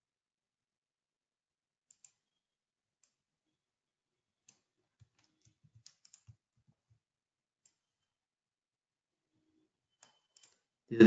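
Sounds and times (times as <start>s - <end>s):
computer mouse clicks: 1.9s - 2.2s, 4.5s - 6.4s, 10.0s - 10.6s.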